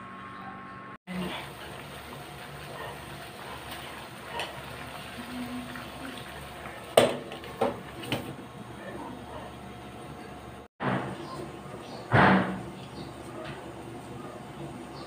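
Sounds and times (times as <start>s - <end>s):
water boiling in a pot: 1.1s - 8.8s.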